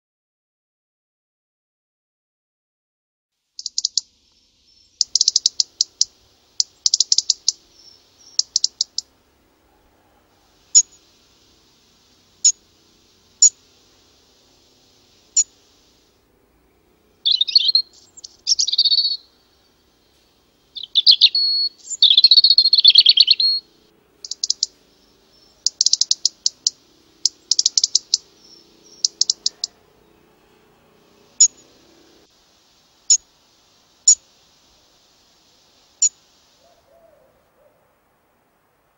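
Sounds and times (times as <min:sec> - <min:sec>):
small songbird calling: 0:03.6 - 0:38.0.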